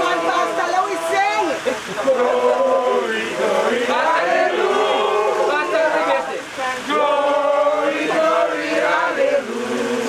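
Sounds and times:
group of people singing: 0.0 - 10.0.

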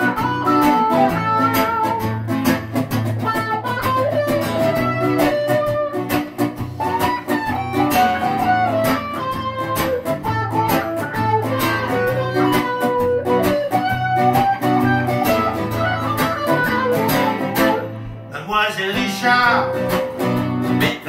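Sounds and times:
acoustic guitar strumming: 0.0 - 21.0
electric guitar melody: 0.0 - 21.0.

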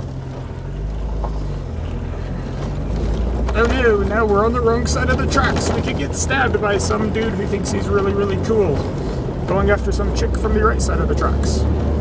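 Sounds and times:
car engine humming: 0.0 - 12.0
road and wind noise: 0.0 - 12.0.

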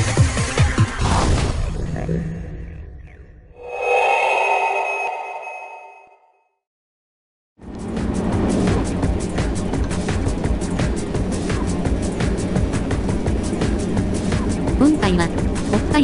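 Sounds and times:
synth chime chord: 3.6 - 6.6
car engine and road noise: 7.6 - 16.0.

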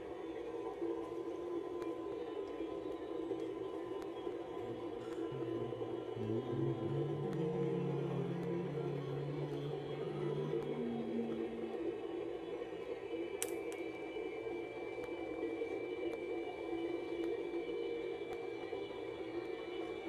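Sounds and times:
thin steady high tone: 0.0 - 20.0
low droning tones: 4.2 - 13.1.

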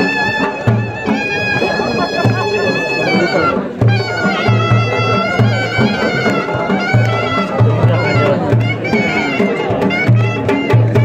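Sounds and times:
drum beating dance rhythm: 0.0 - 11.0
reedy shawm melody: 0.0 - 11.0.

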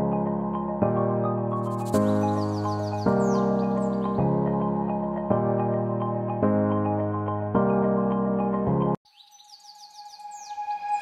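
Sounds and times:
bird chirps: 1.6 - 4.2, 9.0 - 11.0.

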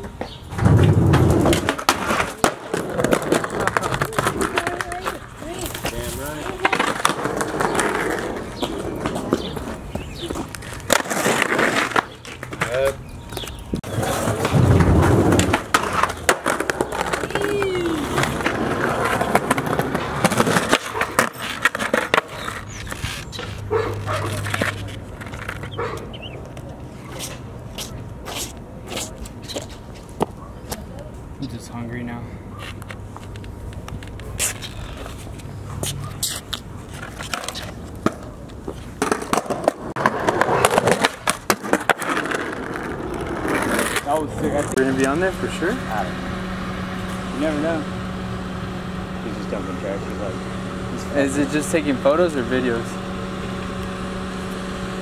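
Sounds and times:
skateboard clacking on landing: 0.0 - 13.0, 13.9 - 25.7
skateboard wheels rolling on concrete: 0.0 - 55.0.

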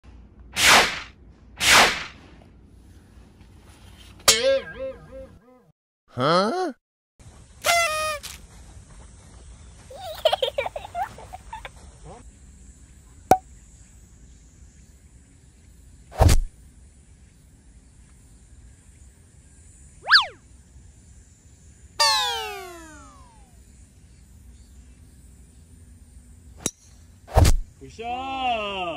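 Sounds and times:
cartoon tone sliding down: 20.0 - 20.4, 22.0 - 23.4
cartoon tone sweeping up and down: 20.0 - 20.4, 22.0 - 23.5.

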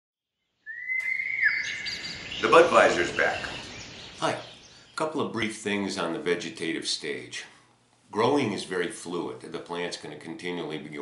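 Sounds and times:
high bird chirps: 0.4 - 5.0
bird whistling: 0.6 - 5.0.

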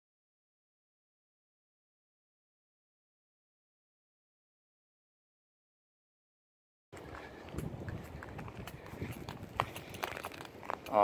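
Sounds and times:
footsteps on dry grass and leaves: 7.0 - 11.0.

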